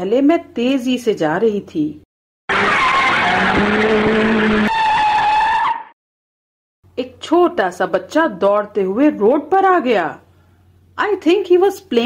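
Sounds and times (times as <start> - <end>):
tyres screeching: 2.5 - 5.9.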